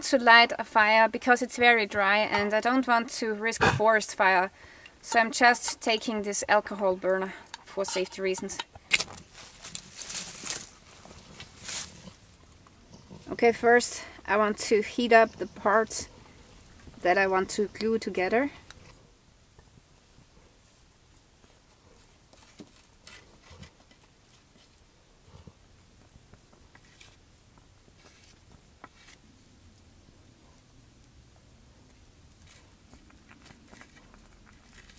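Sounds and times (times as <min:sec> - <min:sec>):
faint outdoor background: 0:00.0 - 0:34.9
soft rustles: 0:09.1 - 0:13.4, 0:20.0 - 0:29.2.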